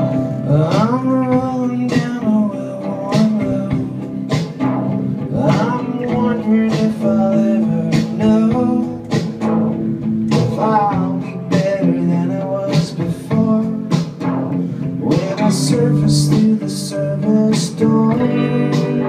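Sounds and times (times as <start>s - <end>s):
person singing sliding melody: 0.0s - 4.6s, 5.3s - 14.2s, 15.0s - 19.0s
acoustic guitar strummed: 0.0s - 19.0s.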